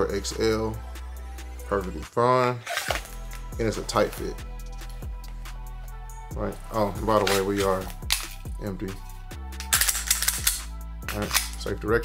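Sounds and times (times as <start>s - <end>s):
background music: 0.0s - 12.0s
pistol sharp metallic clicks: 9.6s - 11.6s.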